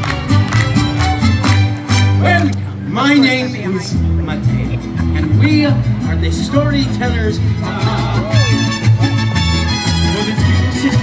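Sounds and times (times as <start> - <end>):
mariachi band playing folk music: 0.0 - 11.0
pulsing bass line: 0.0 - 11.0.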